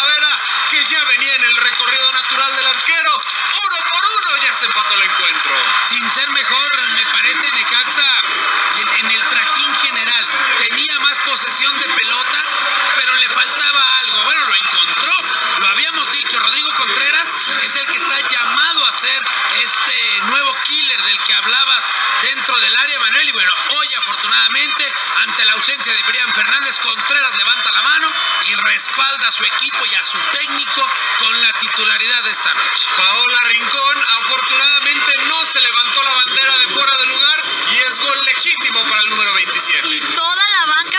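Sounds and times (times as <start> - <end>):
radio sports commentary: 0.0 - 40.9.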